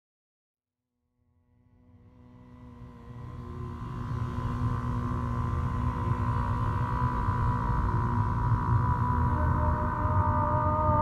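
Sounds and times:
ambient drone music: 1.7s - 11.0s.

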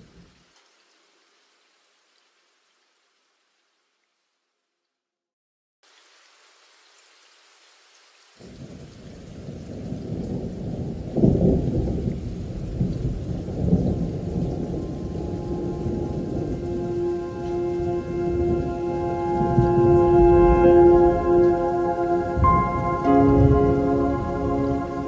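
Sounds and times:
rain rushing: 0.0s - 4.3s, 5.8s - 25.0s
thunder rolling: 9.7s - 25.0s
horn-like musical tones: 14.8s - 25.0s.

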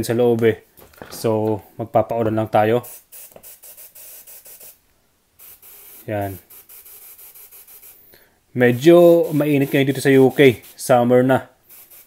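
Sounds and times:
pressure sprayer hissing: 9.0s - 10.9s, 11.7s - 12.0s.

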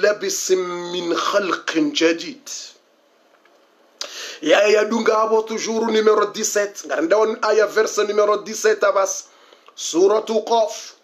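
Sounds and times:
man speaking: 0.0s - 2.8s, 4.0s - 11.0s.

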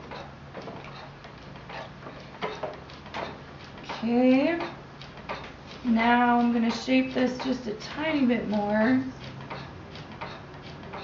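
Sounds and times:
potter's wheel clicking: 0.0s - 11.0s.

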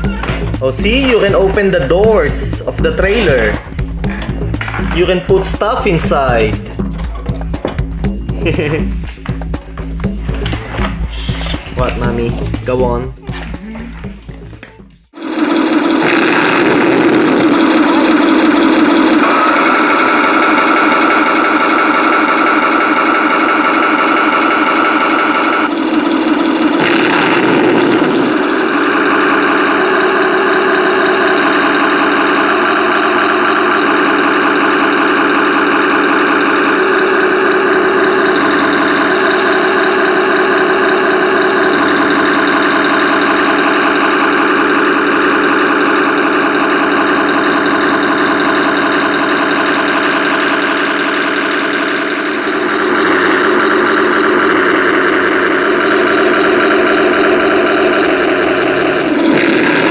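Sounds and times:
simulated tank engine running: 0.0s - 59.9s.

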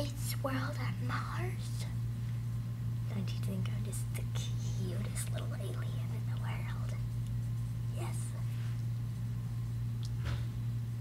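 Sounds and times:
low electrical hum: 0.0s - 11.0s
girl whispering softly: 7.9s - 8.6s.

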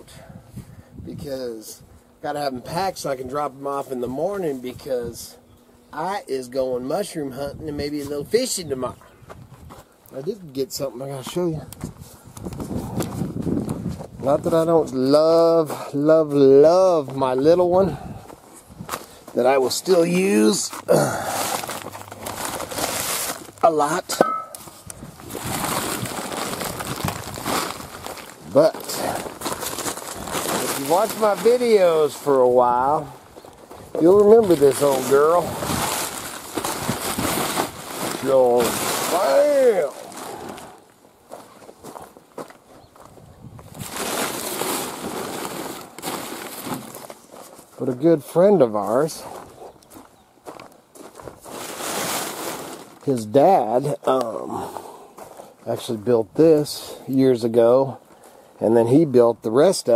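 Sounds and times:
footsteps on dry ground: 9.0s - 10.0s, 11.8s - 23.7s, 24.3s - 53.0s, 54.0s - 56.0s
plastic tarp rustling and crinkling: 18.7s - 42.2s, 43.6s - 50.1s, 51.0s - 54.0s.

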